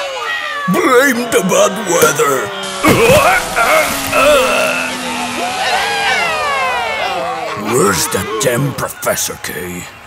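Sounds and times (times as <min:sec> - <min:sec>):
long falling pitch glide: 0:00.5 - 0:08.4
wordless vocal exclamations: 0:02.8 - 0:08.5.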